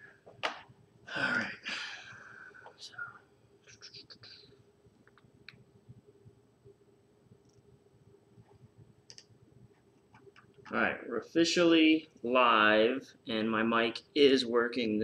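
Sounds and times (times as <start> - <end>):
faint steady hum: 0.0 - 15.0
soft computer clicks: 9.1 - 9.3.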